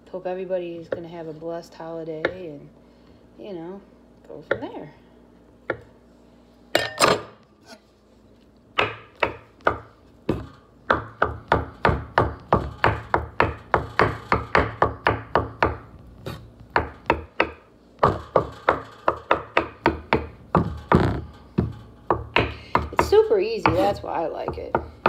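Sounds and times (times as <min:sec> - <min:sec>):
knife chopping on wooden board: 0:08.8 - 0:25.0.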